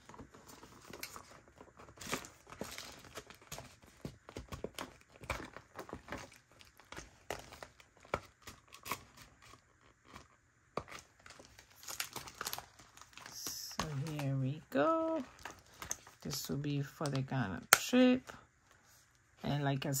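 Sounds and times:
plastic pages crinkling and rustling: 0:00.0 - 0:17.3.

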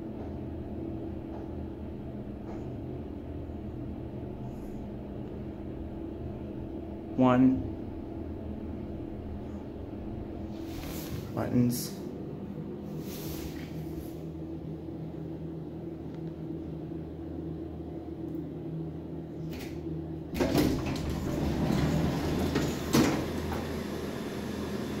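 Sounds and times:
elevator humming: 0:00.0 - 0:25.0
elevator doors sliding open: 0:09.2 - 0:11.4, 0:19.4 - 0:25.0.

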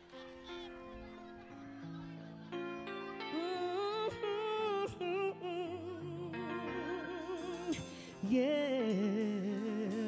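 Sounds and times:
woman singing into a microphone: 0:03.2 - 0:10.0.

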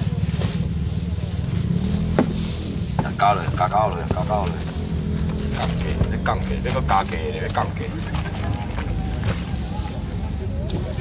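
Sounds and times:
small engine droning: 0:00.0 - 0:11.0.

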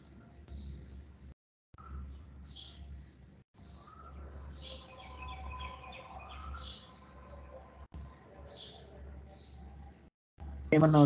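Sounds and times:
faint bird chirps: 0:01.8 - 0:09.9.

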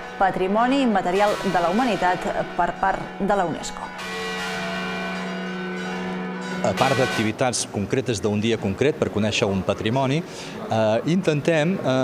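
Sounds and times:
large church bell ringing: 0:00.0 - 0:07.9.

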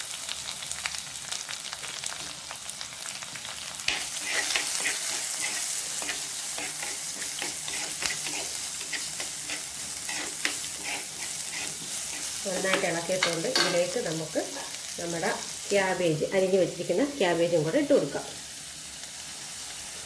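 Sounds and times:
food sizzling in hot oil: 0:00.0 - 0:20.0
spoon scraping and tapping pot: 0:03.9 - 0:13.9.

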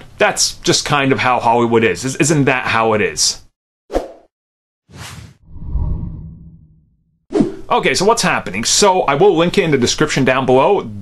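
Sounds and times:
sharp swish: 0:04.9 - 0:06.2
deep whoosh: 0:05.0 - 0:06.9.

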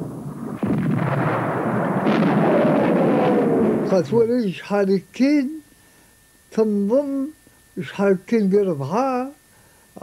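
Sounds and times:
artillery blast: 0:00.0 - 0:04.2
rumble of firing and explosions: 0:00.0 - 0:04.4.

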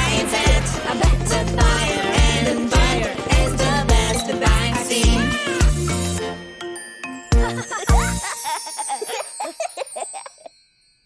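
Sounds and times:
background music with steady beat: 0:00.0 - 0:08.4.

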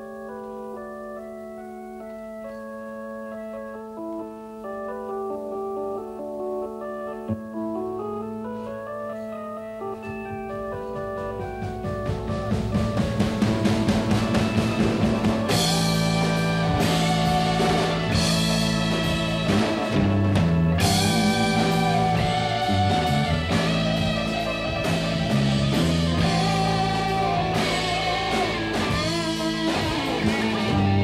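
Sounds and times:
organ chords: 0:00.0 - 0:31.0
rock band drums and bass: 0:10.0 - 0:31.0.

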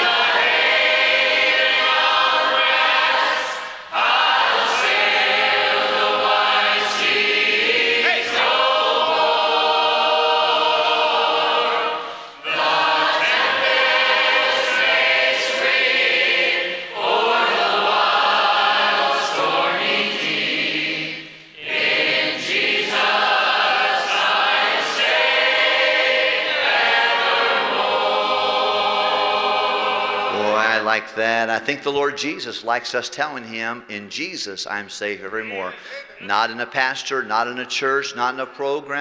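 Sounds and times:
congregation singing a hymn: 0:00.0 - 0:32.4, 0:34.7 - 0:38.9.

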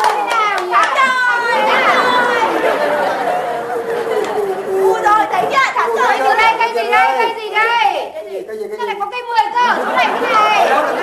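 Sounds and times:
people chattering excitedly: 0:00.0 - 0:11.0.

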